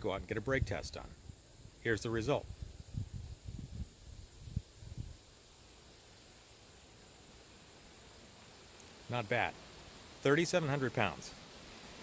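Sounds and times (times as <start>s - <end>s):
faint hiss: 0.0s - 12.0s
insect buzzing: 1.0s - 12.0s.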